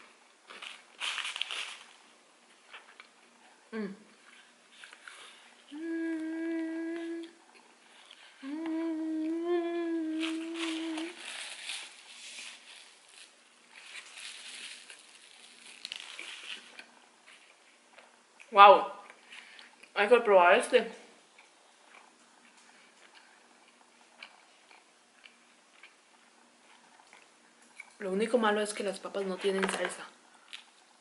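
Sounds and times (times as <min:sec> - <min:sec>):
crackly eating sounds: 0:00.0 - 0:31.0
woman humming with enjoyment: 0:03.7 - 0:04.1, 0:05.7 - 0:07.4, 0:08.3 - 0:11.3.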